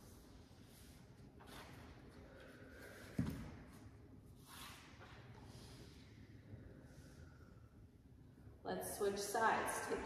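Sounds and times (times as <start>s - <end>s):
slow deep breathing: 2.1s - 3.8s.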